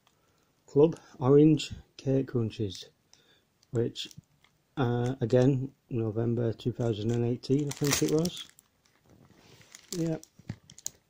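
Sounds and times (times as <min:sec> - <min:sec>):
plastic wrapper crinkling: 0:06.8 - 0:11.0.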